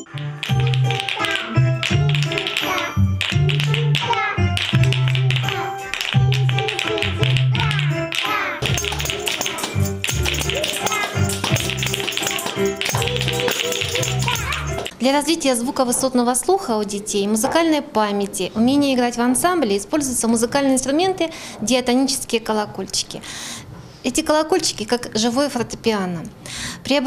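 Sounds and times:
wooden spoons clacking: 0.0s - 14.9s
tambourines shaking: 0.1s - 14.9s.

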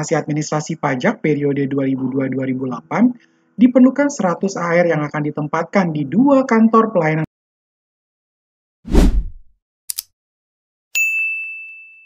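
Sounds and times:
bright bell-like ding: 11.0s - 12.0s.

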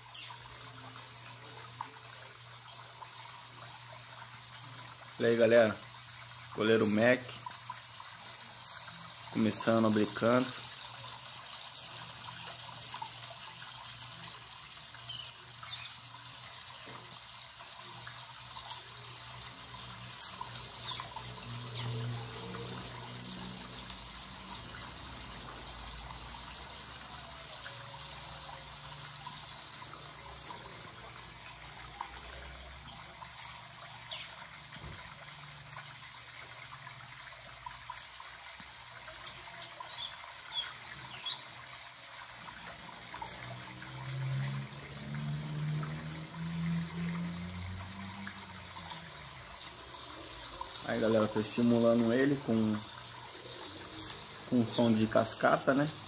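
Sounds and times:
trickling splashing water: 0.0s - 56.0s
high bird chirps: 0.1s - 0.4s, 15.0s - 16.0s.

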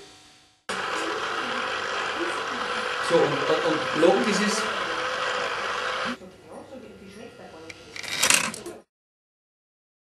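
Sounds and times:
low voices: 0.7s - 6.3s.

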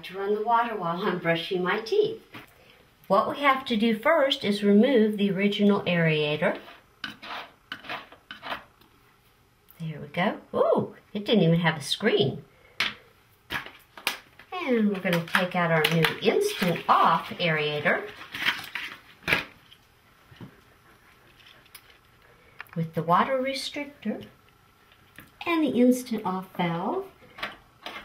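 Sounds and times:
faint handling sound: 18.0s - 22.8s
plastic packaging crackling: 18.1s - 19.8s.

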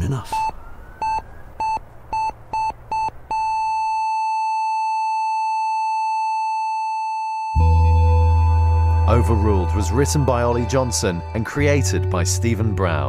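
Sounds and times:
heart monitor beeping: 0.3s - 7.8s
heart monitor flatline tone: 0.3s - 10.0s.

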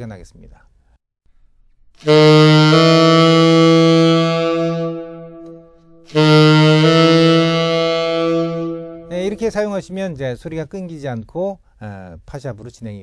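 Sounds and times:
tenor saxophone playing: 2.0s - 10.0s.

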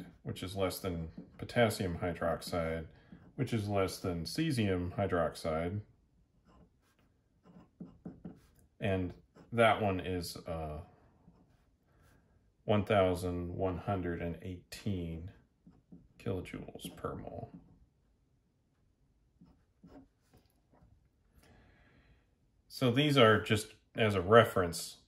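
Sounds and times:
pen scratching on paper: 6.3s - 9.8s, 11.2s - 11.8s, 19.4s - 20.8s
pen nib scratching on paper: 6.4s - 8.7s.

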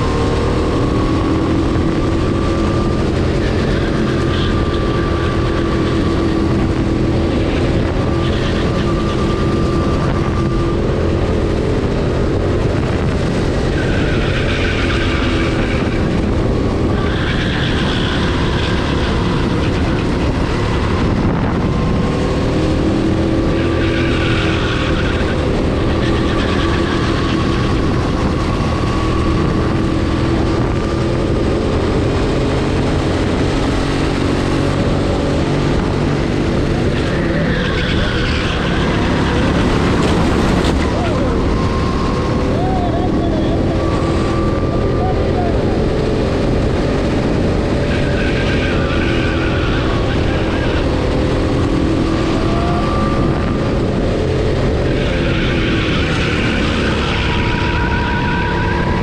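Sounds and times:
go-kart engine: 0.0s - 59.0s.

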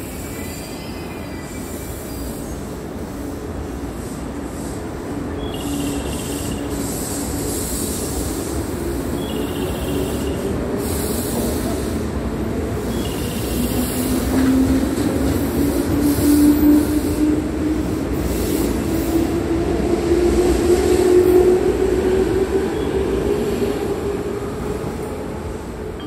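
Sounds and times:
wheels rumbling on rail: 0.0s - 26.0s.

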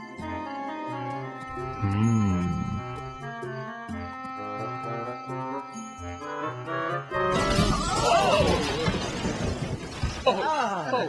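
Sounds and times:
background music: 0.0s - 8.2s
wavering pitched sound: 1.7s - 3.2s
cartoon crash: 7.3s - 10.2s.

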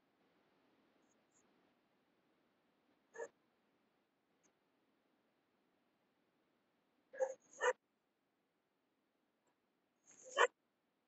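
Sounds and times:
short pitched yelp-like calls: 7.2s - 7.8s, 10.1s - 10.6s.

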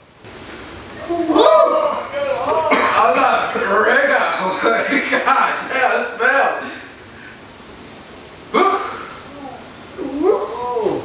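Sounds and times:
man sneezing: 2.5s - 3.2s, 8.6s - 9.2s.

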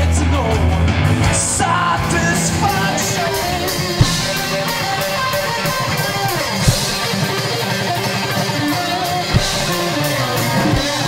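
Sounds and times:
hard drum hits: 2.0s - 7.3s, 9.3s - 10.9s.

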